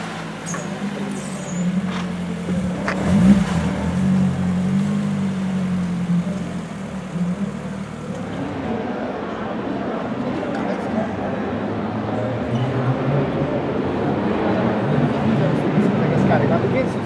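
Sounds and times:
sports car engine passing: 0.0 - 10.1.

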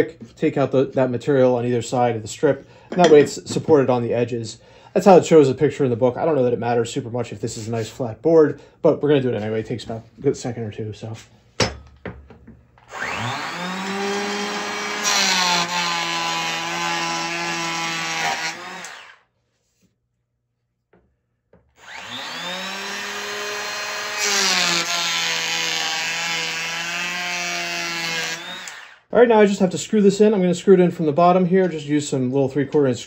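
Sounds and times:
hand planer motor whining: 12.8 - 19.2, 21.8 - 29.0
planer blades cutting wood: 12.9 - 19.2, 21.8 - 29.0.

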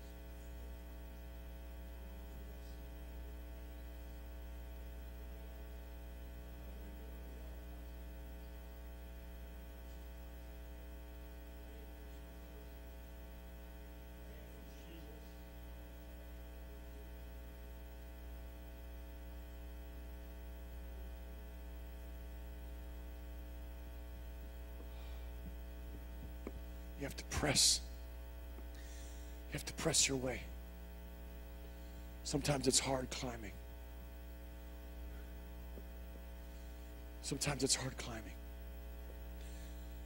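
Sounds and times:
faint electrical mains hum: 0.0 - 40.0.

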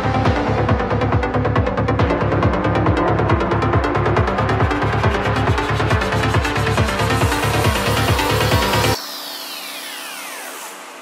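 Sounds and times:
synthesized noise wash: 3.2 - 11.0.

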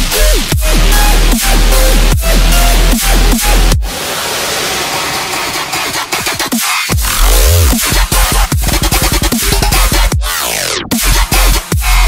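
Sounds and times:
dubstep bass and beat: 0.0 - 12.0.

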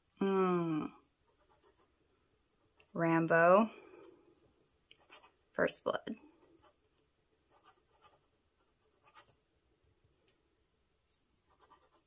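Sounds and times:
pen scratching on paper: 5.0 - 5.4, 7.5 - 9.3, 11.5 - 12.0.

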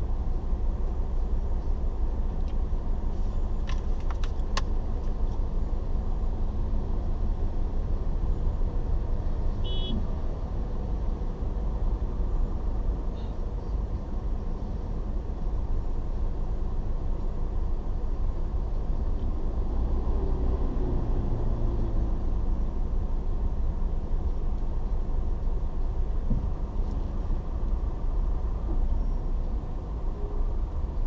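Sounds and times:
traffic rumble from inside car: 0.0 - 31.0.

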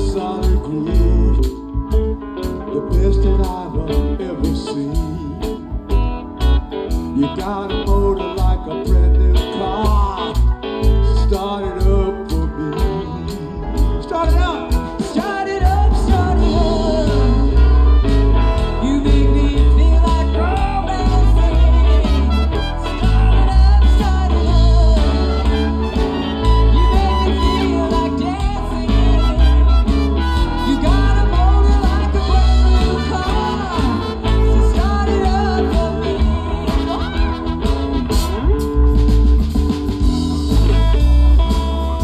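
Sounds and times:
blues band with horns: 0.0 - 42.0.

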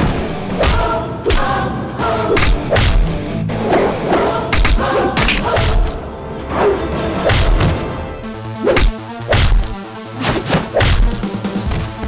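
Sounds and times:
action music: 0.0 - 12.0
punch and kick thuds: 10.3 - 12.0.

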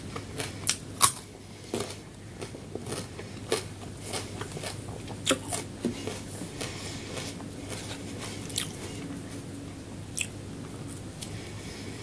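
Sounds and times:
person chewing soft food: 0.0 - 12.0.

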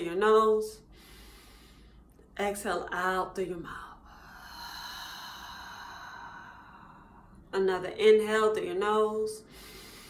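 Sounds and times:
woman exhaling slowly: 4.0 - 7.4.

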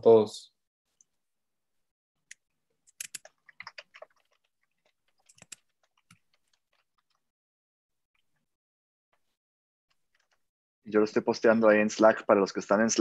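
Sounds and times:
faint keyboard typing: 2.3 - 7.3, 9.2 - 10.5.

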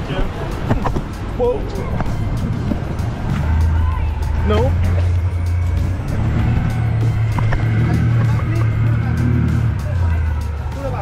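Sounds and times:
boat engine humming: 0.0 - 11.0
knocks and rumble of boat: 0.0 - 11.0.

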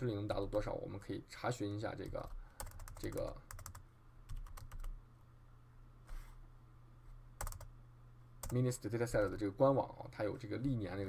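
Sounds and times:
steady low hum: 0.0 - 11.0
typing on computer keyboard: 2.0 - 4.9, 7.4 - 7.7.

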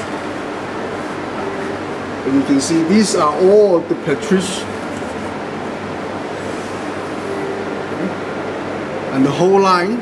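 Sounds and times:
air-conditioning rushing hum: 0.0 - 10.0.

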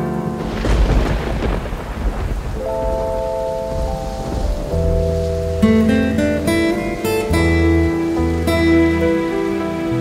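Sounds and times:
rain: 0.0 - 10.0
low rumble of thunder: 0.4 - 6.3.

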